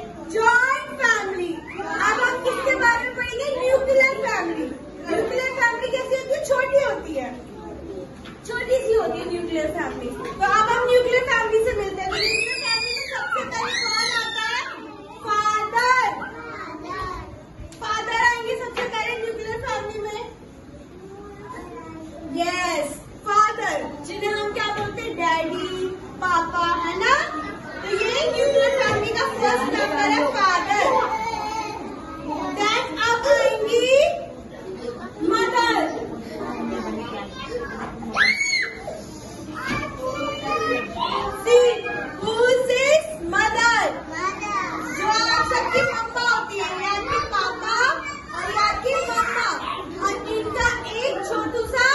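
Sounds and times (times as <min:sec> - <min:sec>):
young children's voices: 0:00.0 - 0:51.9.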